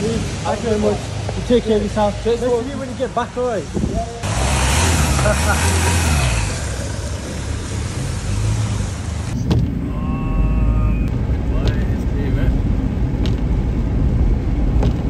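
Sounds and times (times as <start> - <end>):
car engine driving off: 4.1 - 15.0
steady low rumble: 9.2 - 15.0.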